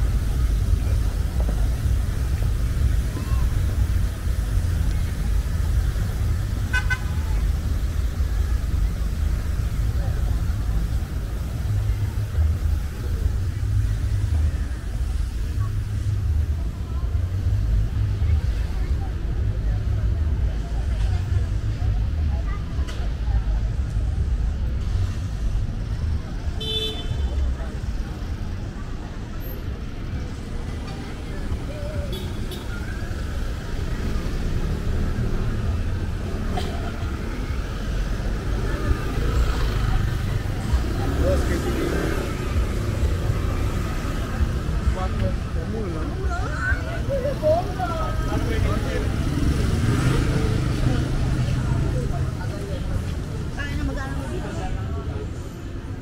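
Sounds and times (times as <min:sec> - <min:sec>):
passing cars and motorbikes: 0:00.0 - 0:56.0
people's voices: 0:00.0 - 0:56.0.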